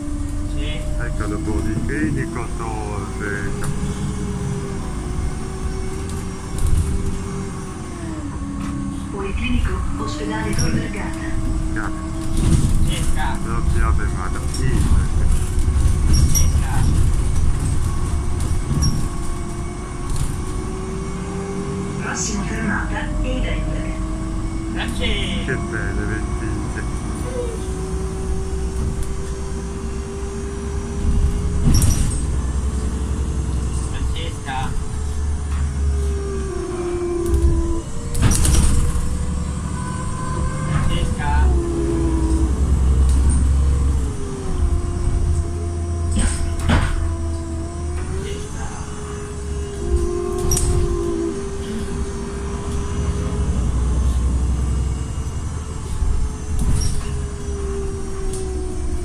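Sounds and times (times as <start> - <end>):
bus drivetrain whine: 0.0 - 59.0
bus engine rumble: 0.0 - 59.0
bus body knocks and rattles: 10.5 - 13.4, 14.4 - 20.7, 30.9 - 32.7, 37.4 - 39.7, 46.0 - 47.2, 55.8 - 57.4.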